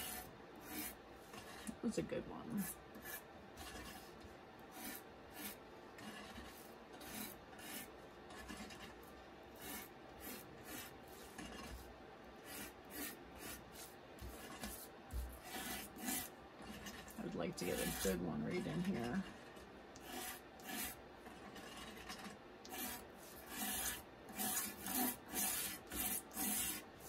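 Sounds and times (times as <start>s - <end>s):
brush dabbing on glass: 0.0s - 27.0s
brush scratching across cardstock: 0.0s - 27.0s.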